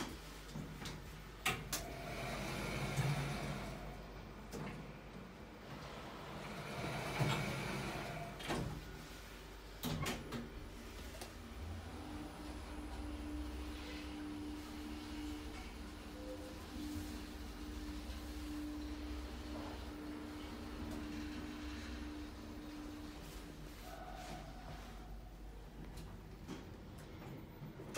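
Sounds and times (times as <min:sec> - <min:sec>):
lift doors sliding shut: 0:01.6 - 0:05.0, 0:05.6 - 0:23.4
lift humming: 0:01.7 - 0:27.9.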